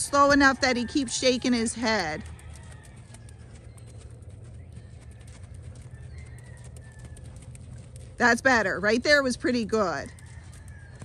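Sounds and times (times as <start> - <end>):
low steady rumble: 0.0 - 11.0
hoofbeats on sand: 1.0 - 11.0.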